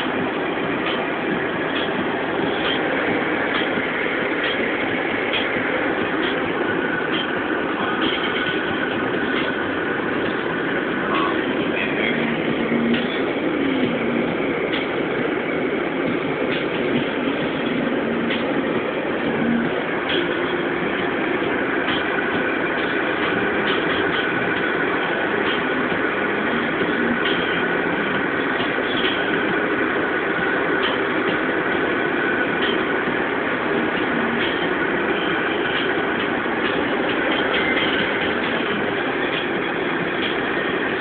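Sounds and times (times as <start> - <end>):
car road and tyre noise: 0.0 - 41.0.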